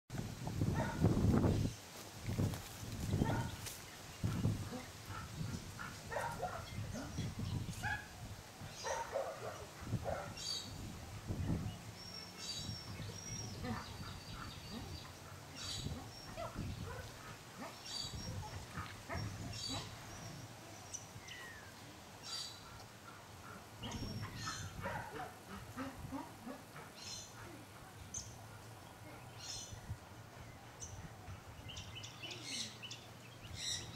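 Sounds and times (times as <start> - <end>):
bird chirps and calls: 30.8 - 33.9.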